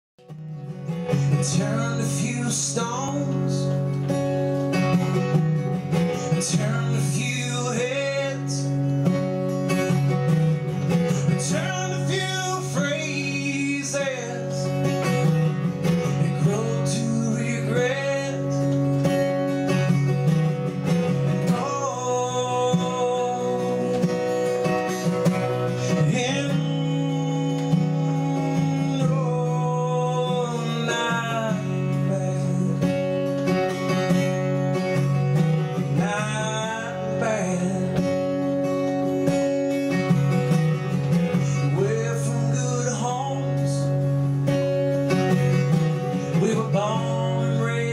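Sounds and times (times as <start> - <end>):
acoustic guitar: 0.2 - 47.9
man singing into a microphone: 1.2 - 3.9, 6.2 - 9.2, 11.1 - 15.3, 16.0 - 19.2, 21.3 - 33.4, 35.6 - 38.4, 41.2 - 44.0, 45.4 - 47.9.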